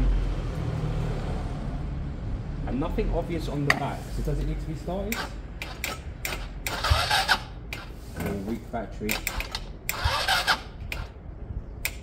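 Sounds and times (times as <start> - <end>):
weak starter motor cranking: 5.0 - 8.0, 9.1 - 11.2.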